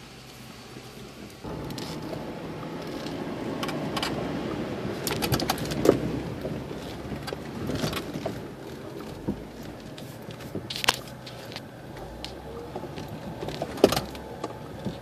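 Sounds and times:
jeep engine on rough trail: 0:00.0 - 0:15.0
knocks and rattles of loose gear: 0:00.4 - 0:15.0.

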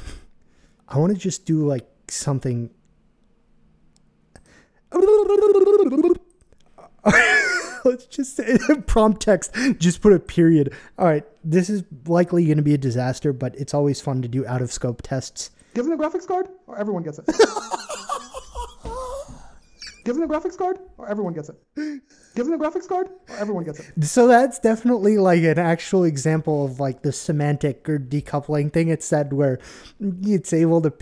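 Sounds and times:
man making throaty vocal tone: 0:04.9 - 0:06.2
man laughing: 0:05.0 - 0:06.2, 0:06.8 - 0:09.8, 0:17.3 - 0:20.1.

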